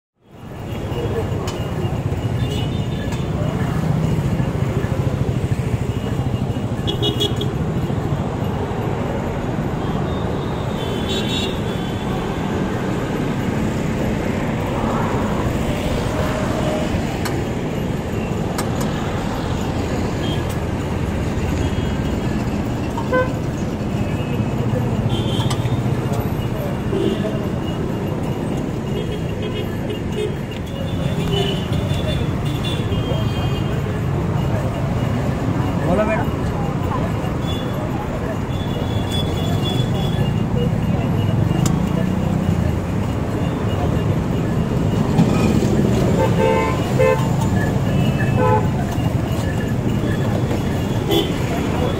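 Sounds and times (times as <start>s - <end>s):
city road traffic: 0.2s - 51.9s
car horn toots: 23.0s - 23.4s, 46.1s - 49.0s, 50.9s - 51.5s.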